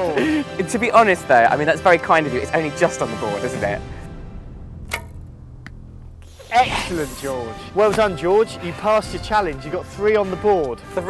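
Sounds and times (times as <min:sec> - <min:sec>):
arrow hitting target crack: 0:04.8 - 0:08.2.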